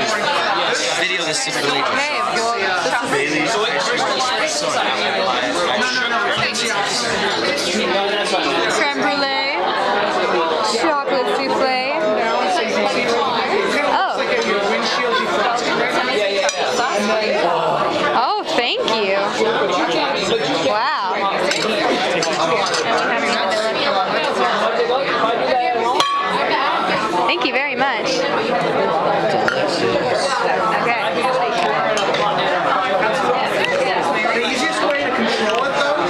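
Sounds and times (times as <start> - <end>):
indistinct chatter: 0.0 - 36.0.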